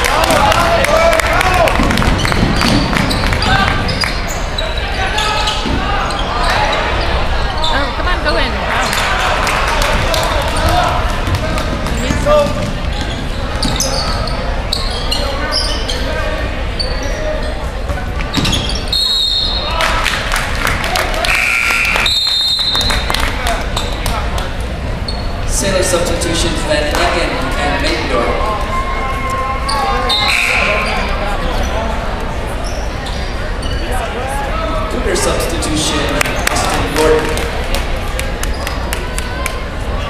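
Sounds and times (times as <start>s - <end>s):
spectators chattering and calling: 0.0s - 40.0s
basketball bouncing on wooden floor: 1.8s - 3.4s, 10.6s - 13.8s.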